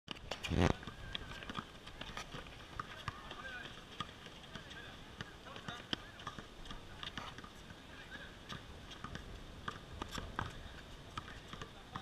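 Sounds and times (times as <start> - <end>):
basketballs bouncing on hard court: 0.1 - 12.0
shoe squeaks: 0.4 - 0.8
faint voices of players: 0.4 - 9.2, 9.8 - 12.0.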